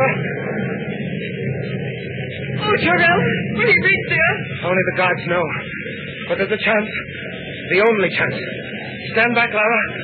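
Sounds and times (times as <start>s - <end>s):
rumbling and hissing noise: 0.0s - 10.0s.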